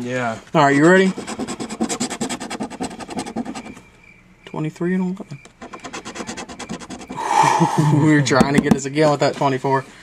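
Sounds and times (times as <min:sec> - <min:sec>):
rasping scratch-off strokes: 0:00.9 - 0:03.8, 0:05.6 - 0:07.2.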